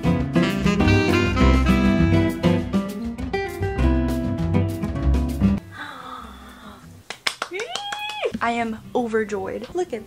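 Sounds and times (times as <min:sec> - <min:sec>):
woman squealing excitedly: 0:07.5 - 0:08.4.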